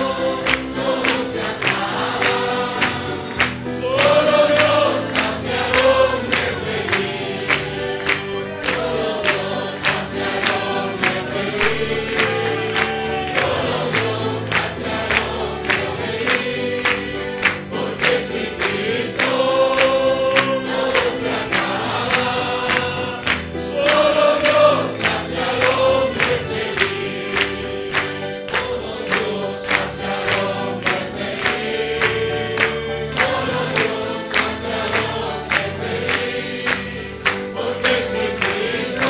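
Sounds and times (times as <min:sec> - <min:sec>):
congregation singing: 0:00.0 - 0:39.0
instrumental accompaniment with beat: 0:00.0 - 0:39.0.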